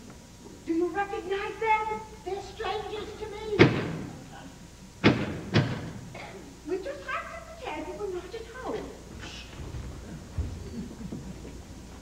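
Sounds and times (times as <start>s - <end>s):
door slamming shut: 3.6s - 4.2s, 5.0s - 6.1s.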